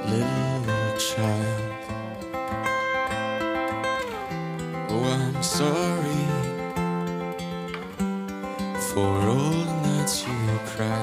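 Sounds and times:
person singing: 0.0s - 2.3s, 4.8s - 7.0s, 8.6s - 11.0s
acoustic guitar strumming: 0.0s - 11.0s.

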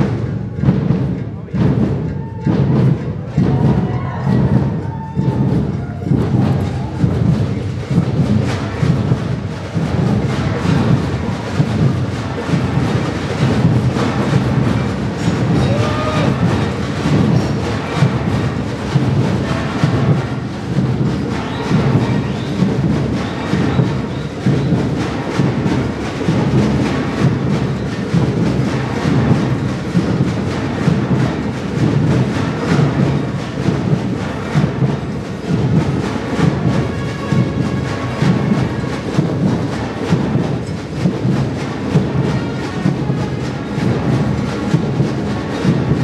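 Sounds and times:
loud live ensemble music: 0.0s - 46.0s
pounding beat: 0.0s - 46.0s.

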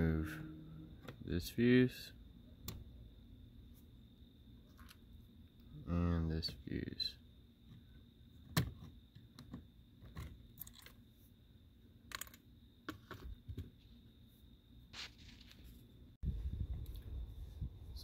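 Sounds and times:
faint high tone: 0.0s - 1.1s.

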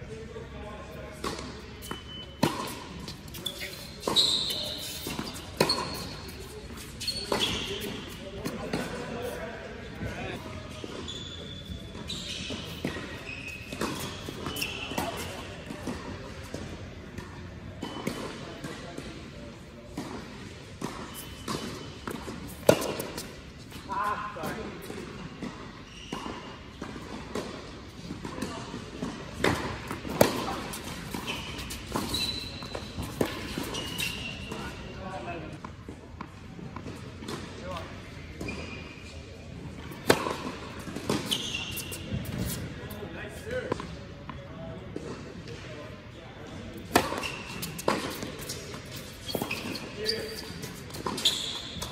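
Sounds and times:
sneakers squeaking: 0.8s - 51.9s
tennis ball bouncing: 1.2s - 3.4s, 4.8s - 9.4s, 12.5s - 19.2s, 19.9s - 23.8s, 24.8s - 34.6s, 39.7s - 42.7s, 46.9s - 49.8s
rackets striking tennis ball: 1.2s - 9.2s, 12.0s - 19.2s, 19.9s - 34.8s, 39.7s - 42.8s, 46.7s - 51.9s.

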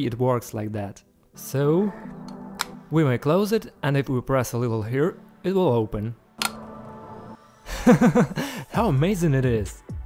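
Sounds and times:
box popping open click: 2.2s - 2.8s, 6.4s - 6.7s
man laughing: 7.7s - 8.8s.

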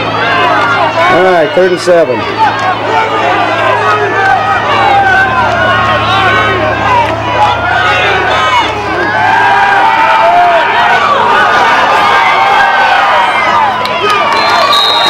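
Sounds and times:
low hum: 0.0s - 14.0s
crowd yelling and cheering: 0.0s - 15.0s.

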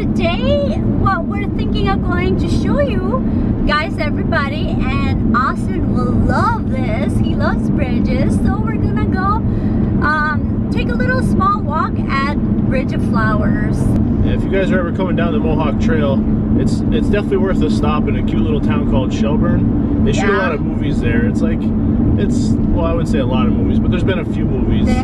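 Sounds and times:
car cabin rumble: 0.0s - 25.0s.

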